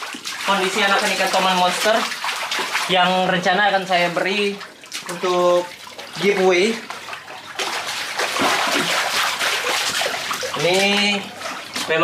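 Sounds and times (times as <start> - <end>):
hand stirring water: 0.0 - 12.0
water splashing and sloshing: 0.0 - 12.0.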